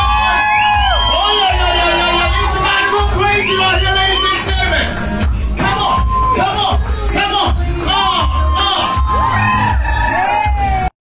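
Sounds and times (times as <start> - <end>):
dance music with heavy bass: 0.0 - 10.9.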